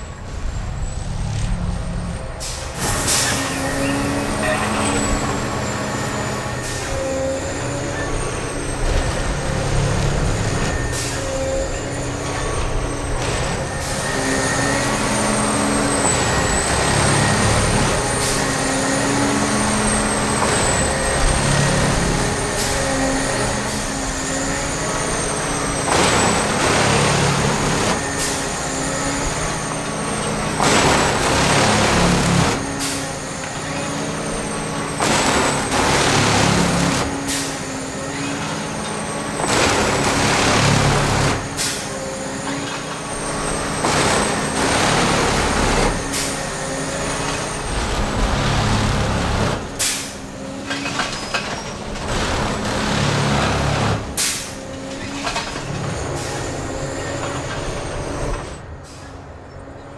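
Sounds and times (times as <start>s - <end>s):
diesel-hydraulic machine drone: 0.0s - 59.9s.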